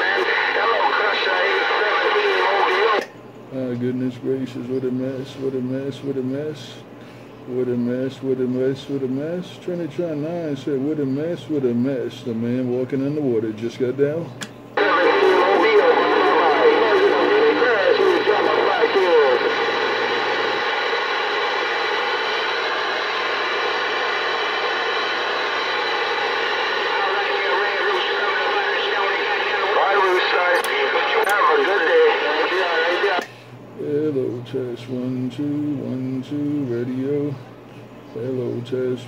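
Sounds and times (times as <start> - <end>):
radio whistles and warbling: 0.0 - 3.0, 14.8 - 33.2
radio static: 0.0 - 12.3, 14.8 - 37.4
garbled distant voices: 14.8 - 20.2.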